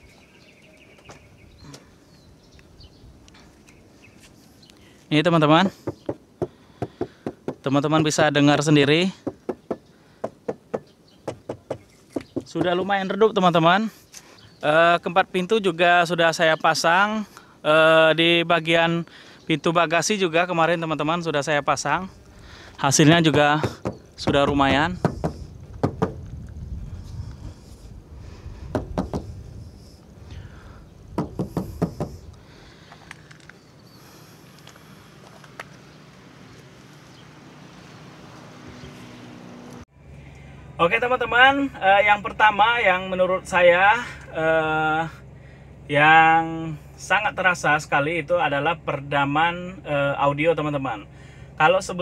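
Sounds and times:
knuckles knocking on plastic door panel: 9.2s - 12.9s, 23.3s - 26.2s, 28.8s - 29.2s, 31.2s - 32.2s
low rumbling handling noise: 22.2s - 35.9s.

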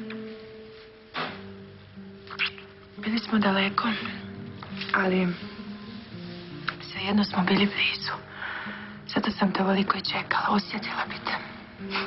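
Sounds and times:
quiet background music: 0.0s - 12.0s.

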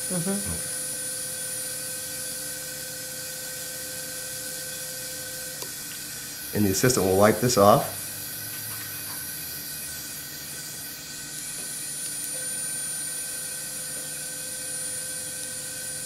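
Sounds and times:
suction hiss: 6.5s - 11.0s.

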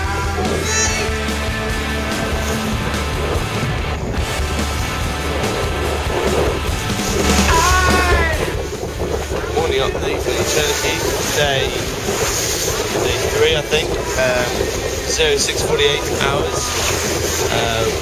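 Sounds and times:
music: 0.0s - 18.0s
water rushing past: 0.0s - 18.0s
wind buffeting microphone: 0.0s - 18.0s
crew voices: 7.2s - 18.0s.

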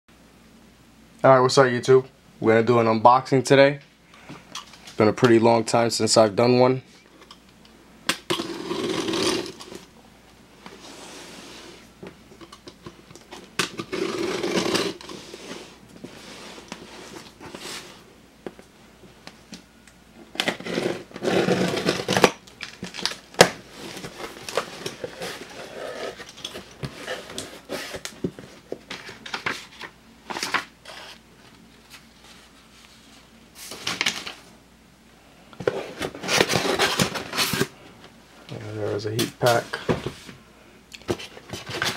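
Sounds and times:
tape tearing: 8.1s - 9.9s, 13.4s - 15.6s, 20.3s - 28.2s, 36.0s - 37.7s
knife slitting packing tape: 8.2s - 9.8s, 13.6s - 15.2s.

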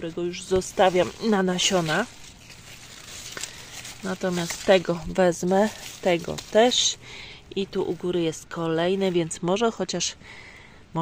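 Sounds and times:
faint rustling: 0.3s - 7.1s.

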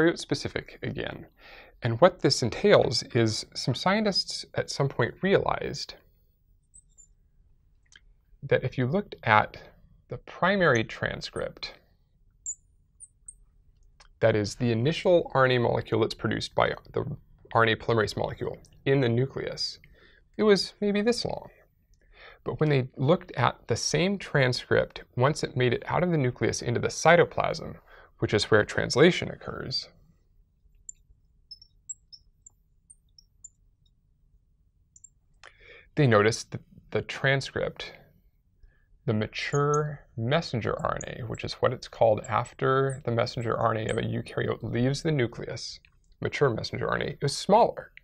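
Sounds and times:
marker squeaking on glass: 12.4s - 13.5s, 30.9s - 33.6s, 40.5s - 44.6s.

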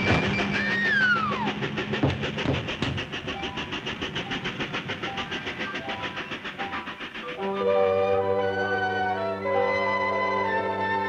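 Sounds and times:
cartoon train chugging: 0.0s - 11.0s
orchestral music: 5.8s - 11.0s.

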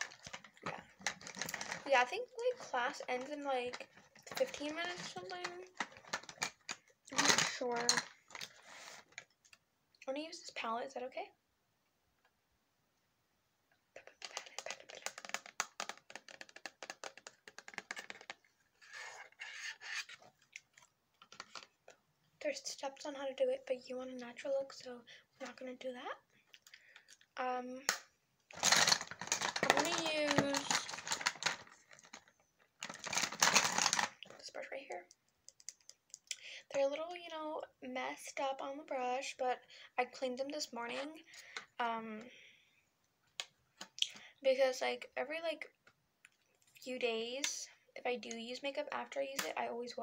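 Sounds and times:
makeup tools clicking and rattling: 0.0s - 8.4s, 28.5s - 34.2s, 34.8s - 36.3s
fingernails scratching: 18.8s - 20.2s.

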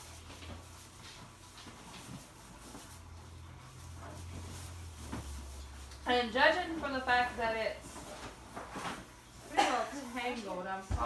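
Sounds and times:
low steady hum: 0.0s - 11.0s
tinsel garland rustling and crinkling: 0.0s - 11.0s.

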